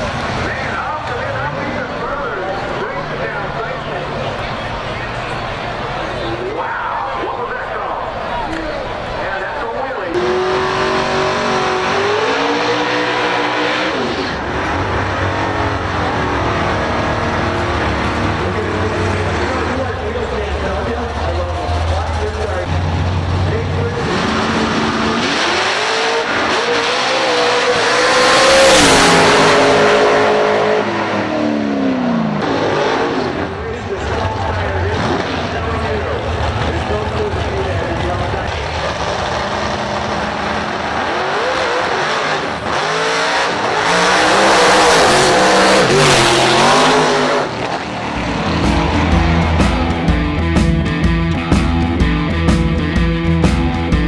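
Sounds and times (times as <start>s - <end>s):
drag race car engines: 0.0s - 54.0s.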